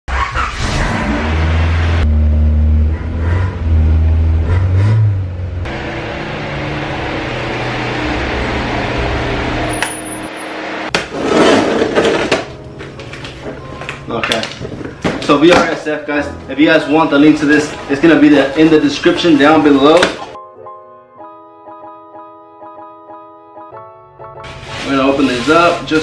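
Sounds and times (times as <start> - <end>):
car engine and exhaust droning: 0.6 - 10.9.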